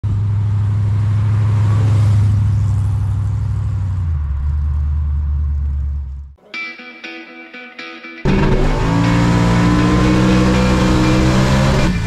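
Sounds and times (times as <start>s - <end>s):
car engine exhaust rumble: 0.0s - 6.4s, 8.3s - 12.0s.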